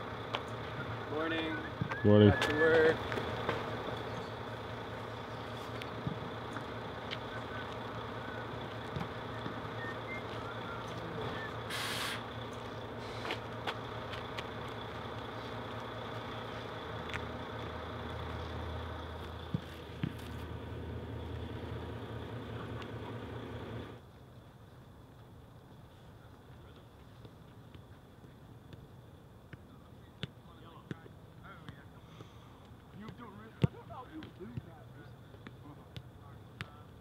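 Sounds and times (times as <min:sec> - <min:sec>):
bus engine idling: 0:00.0 - 0:26.9
short burst of hiss: 0:11.6 - 0:12.3.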